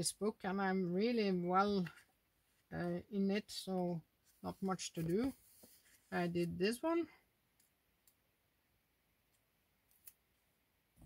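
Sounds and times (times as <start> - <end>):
paper pages handled: 4.2 - 6.2.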